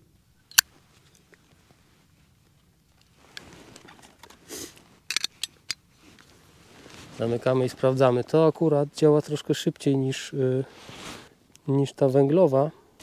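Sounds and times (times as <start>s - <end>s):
faint handling sounds: 0.5s - 13.0s.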